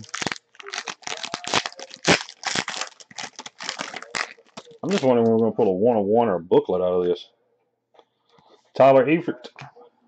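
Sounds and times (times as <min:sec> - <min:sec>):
foil wrapper crinkling and tearing: 0:00.0 - 0:05.3.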